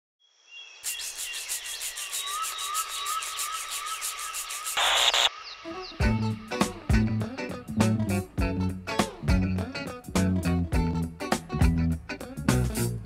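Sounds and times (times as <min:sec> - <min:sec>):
fast pulsing electronic noise: 0:00.9 - 0:05.4
loud burst of hiss: 0:04.4 - 0:05.3
bass and guitar music: 0:05.9 - 0:13.0.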